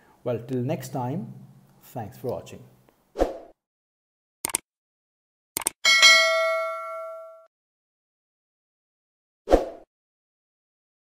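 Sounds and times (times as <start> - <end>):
notification bell ding: 5.8 - 7.5.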